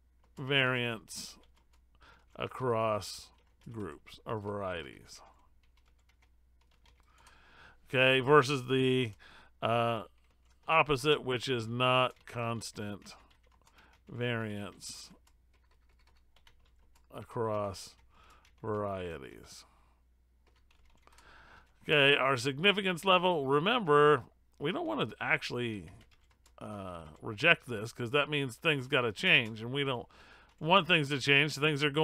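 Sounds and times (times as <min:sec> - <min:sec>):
man's voice: 0:00.4 - 0:01.4, 0:02.4 - 0:05.2, 0:07.9 - 0:10.1, 0:10.7 - 0:13.2, 0:14.1 - 0:15.2, 0:17.1 - 0:18.0, 0:18.6 - 0:19.7, 0:21.9 - 0:26.0, 0:26.6 - 0:32.0
typing on computer keyboard: 0:01.2 - 0:02.4, 0:03.2 - 0:04.5, 0:05.3 - 0:07.4, 0:10.1 - 0:10.7, 0:12.0 - 0:18.7, 0:20.4 - 0:21.8, 0:25.8 - 0:27.2.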